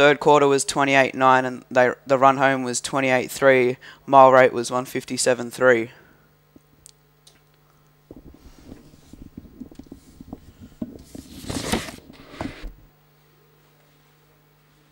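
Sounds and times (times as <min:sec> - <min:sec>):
low electrical hum: 0:00.0 - 0:14.9
soft knocks and rustling: 0:08.1 - 0:12.9.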